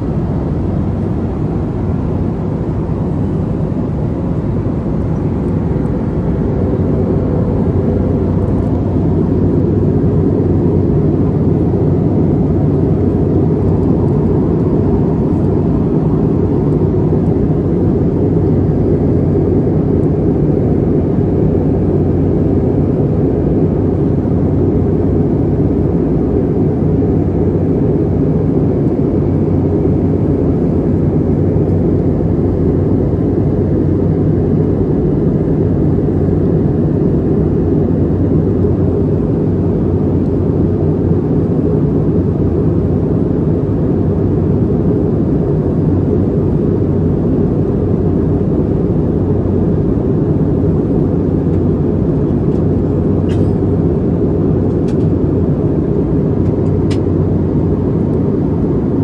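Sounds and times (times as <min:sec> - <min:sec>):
aircraft cabin engine roar: 0:00.0 - 0:59.0
faint steady hum: 0:00.0 - 0:59.0.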